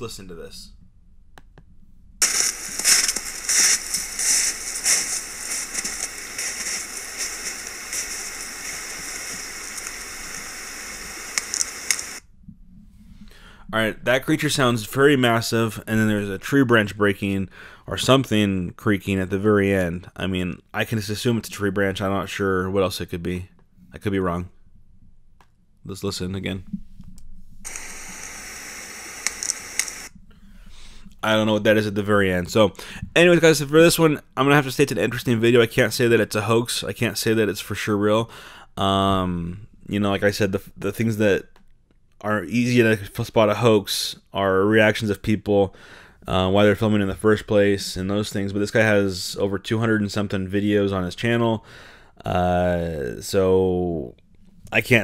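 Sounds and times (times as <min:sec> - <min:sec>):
animal crunching through snow: 0:02.2 - 0:12.2, 0:27.7 - 0:30.1
sharp cracks: 0:02.2 - 0:12.2, 0:27.7 - 0:30.1
steady hiss: 0:02.2 - 0:12.3, 0:26.0 - 0:41.5.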